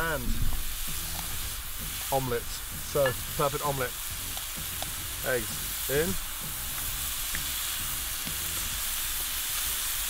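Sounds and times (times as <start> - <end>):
mushrooms sizzling in a pan: 0.0 - 10.0.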